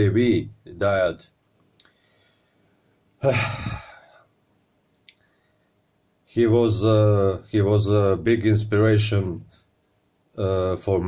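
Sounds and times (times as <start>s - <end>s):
man sighing: 3.2s - 4.3s.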